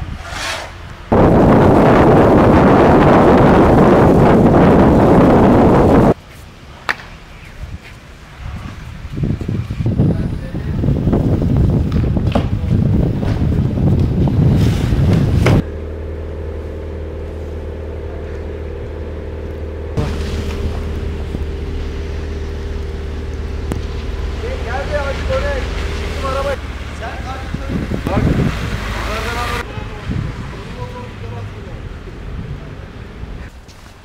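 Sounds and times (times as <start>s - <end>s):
wind on microphone: 0.0s - 6.2s, 7.5s - 15.6s, 20.0s - 26.6s, 27.2s - 30.9s
broom sweeping snow: 0.1s - 0.9s.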